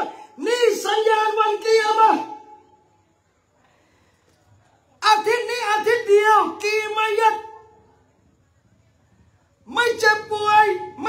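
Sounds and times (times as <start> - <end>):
man lecturing: 0.0 - 2.5, 5.0 - 7.6, 9.7 - 11.0.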